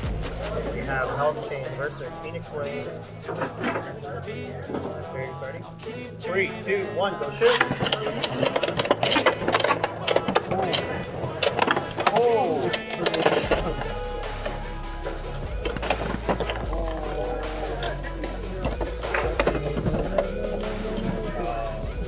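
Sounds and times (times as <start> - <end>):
music: 0.0 - 22.0
background voices: 0.3 - 22.0
tops clacking together: 7.4 - 21.4.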